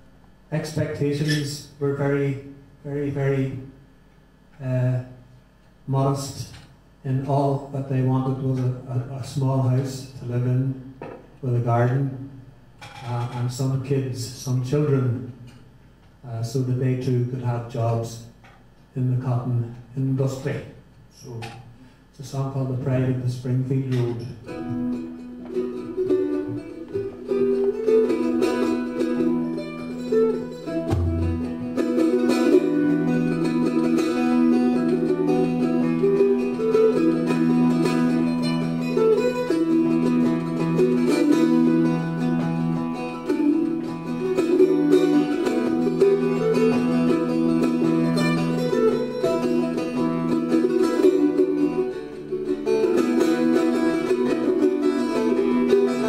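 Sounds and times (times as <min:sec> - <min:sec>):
plucked mandolin and bouzouki: 0:12.8 - 0:13.9, 0:23.6 - 0:56.0.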